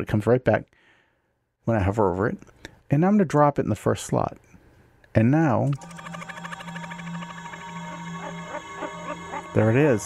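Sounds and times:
low drone: 5.7s - 10.0s
warbling tones: 5.7s - 10.0s
fast fluttering buzz: 5.8s - 10.0s.

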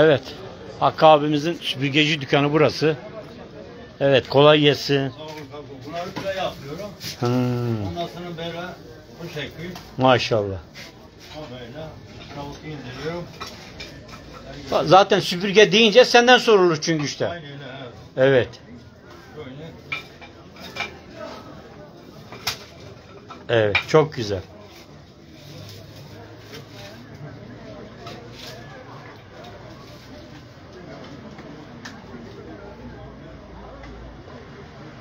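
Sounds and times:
quiet voices talking: 0.0s - 35.0s
broom straw crackling and rustling: 6.0s - 9.8s, 24.6s - 27.2s, 28.3s - 30.6s.

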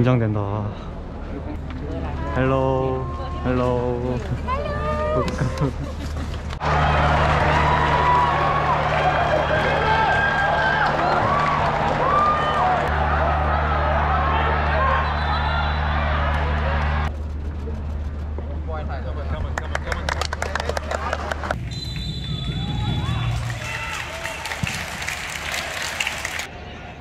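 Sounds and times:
stadium crowd voices: 1.1s - 27.0s.

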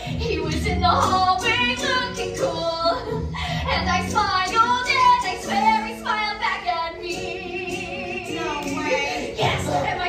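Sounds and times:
musical backing: 0.0s - 10.0s
woman singing with vibrato: 0.0s - 10.0s.

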